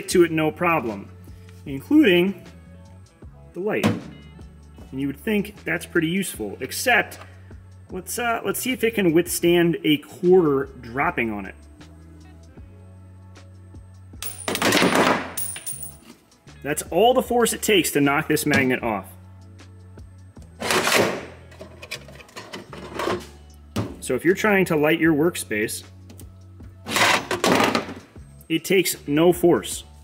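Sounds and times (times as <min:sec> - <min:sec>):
background music: 0:00.0 - 0:30.0
coin and work light clattering: 0:14.2 - 0:16.1
rough noisy scrape: 0:20.6 - 0:23.4, 0:26.8 - 0:27.8.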